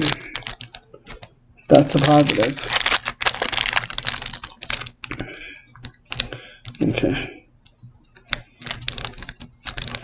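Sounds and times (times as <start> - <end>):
foil wrapper crinkling: 0.0 - 7.0, 8.2 - 10.0.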